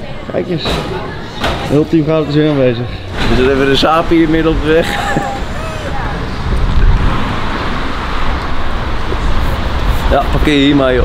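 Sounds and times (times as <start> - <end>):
low traffic rumble: 0.0 - 11.0
car passing by: 3.1 - 11.0.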